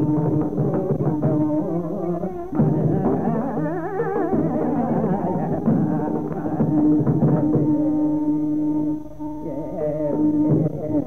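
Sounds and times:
hand drum strokes: 0.0 - 11.0
ornamented melodic line: 0.0 - 11.0.

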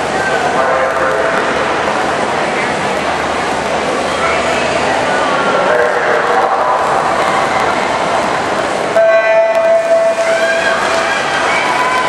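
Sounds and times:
crowd chatter and calls: 0.0 - 12.0.

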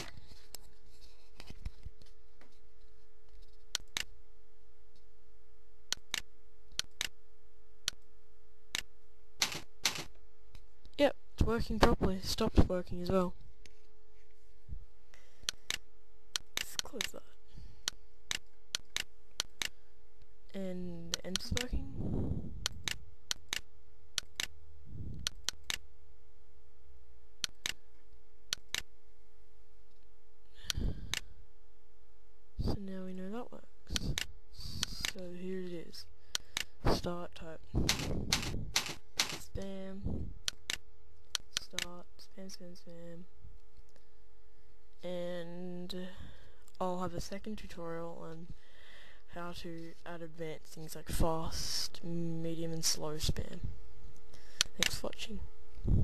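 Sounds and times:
steady electrical hum: 0.0 - 56.0
mouse and keyboard clicks: 3.4 - 4.1, 17.8 - 19.8, 28.5 - 28.9, 40.4 - 42.0, 54.6 - 55.1.

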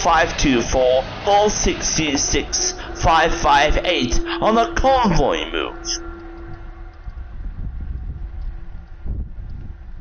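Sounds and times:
distant diesel locomotive droning: 0.0 - 10.0
wind buffeting microphone: 0.0 - 10.0.

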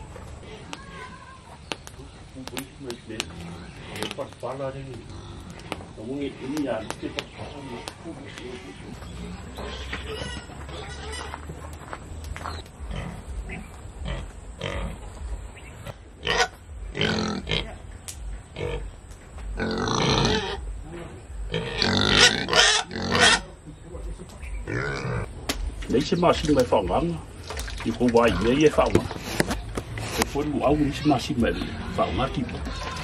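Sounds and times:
pig calling: 5.0 - 6.8, 8.5 - 11.6, 15.8 - 17.9, 18.5 - 20.8, 21.4 - 23.6, 24.5 - 25.3, 27.7 - 33.0.

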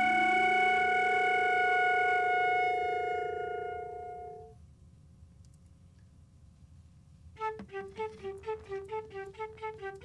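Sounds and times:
violin holding long notes: 0.0 - 4.5, 7.4 - 10.0
flute holding long notes: 0.0 - 4.6, 7.4 - 10.0.

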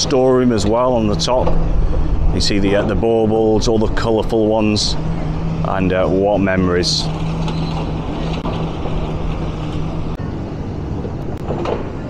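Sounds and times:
heavy diesel engine humming: 0.0 - 12.0
outdoor noise: 0.0 - 12.0.

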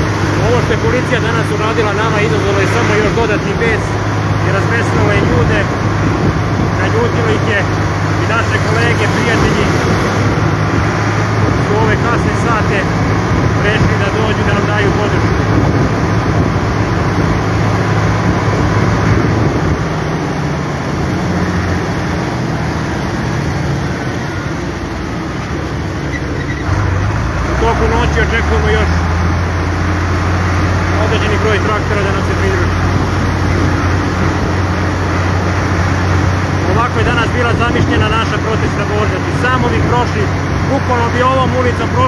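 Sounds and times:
tractor engine droning: 0.0 - 42.0.

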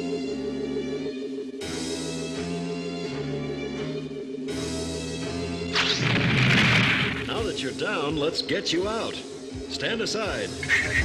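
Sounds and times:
background score music: 0.0 - 11.0
loud crashing impact: 5.8 - 7.6.

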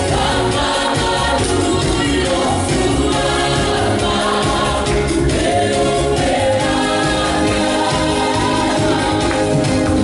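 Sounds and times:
gospel group singing: 0.0 - 10.0.

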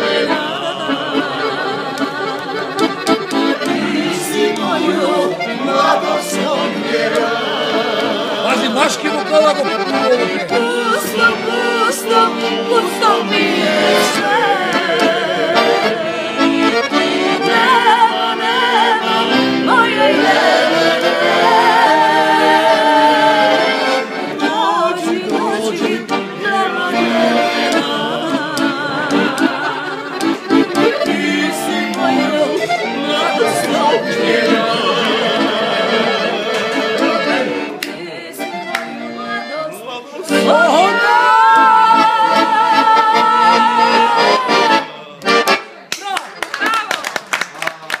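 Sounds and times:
woman and man singing: 0.0 - 2.8, 10.4 - 37.2, 39.5 - 45.1
piano accordion: 0.0 - 45.9
hands clapping: 1.9 - 5.0, 30.2 - 30.9, 37.7 - 38.0, 38.7 - 39.0, 45.2 - 48.0
voices calling out: 39.8 - 45.6.

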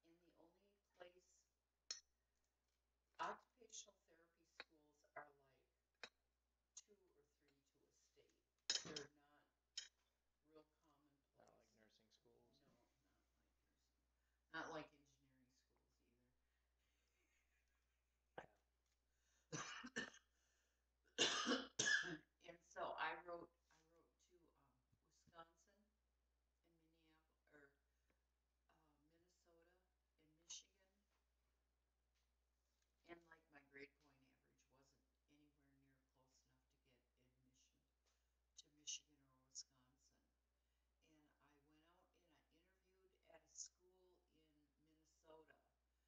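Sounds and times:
person's voice: 0.0 - 1.3, 3.2 - 5.6, 6.8 - 9.4, 14.6 - 15.6, 21.8 - 25.8, 33.1 - 37.4, 41.1 - 45.6
person coughing: 19.5 - 20.2, 21.2 - 22.2.

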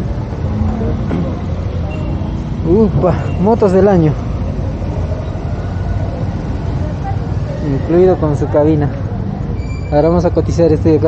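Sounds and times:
faint voices: 0.0 - 11.0
low rumble of motor vehicles: 0.0 - 11.0.

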